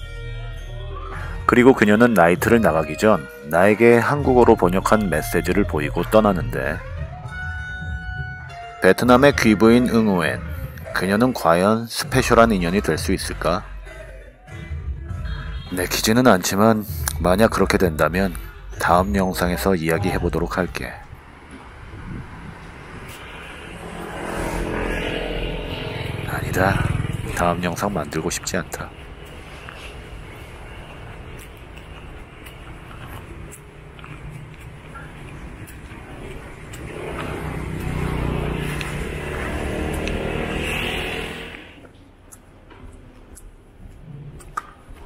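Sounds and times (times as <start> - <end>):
road noise: 0.0 - 13.7, 15.1 - 45.0
street noise: 0.0 - 45.0
vehicle engine running: 21.1 - 41.9.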